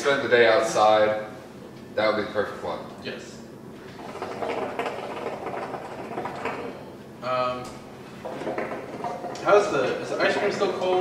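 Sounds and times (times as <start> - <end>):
hookah water bubbling: 3.8 - 11.0.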